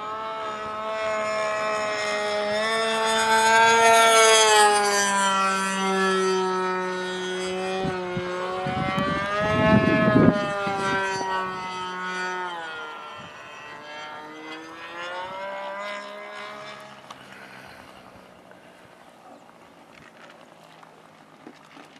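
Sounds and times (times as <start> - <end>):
model plane engine overhead: 0.0 - 21.9.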